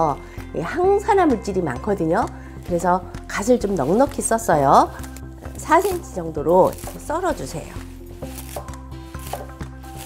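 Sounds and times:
background music: 0.0 - 10.0
knife slicing on wooden board: 5.0 - 10.0.

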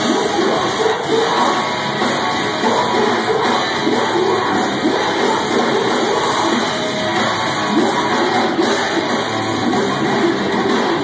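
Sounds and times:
crowd shouting along: 0.0 - 11.0
metal band playing loud: 0.0 - 11.0.

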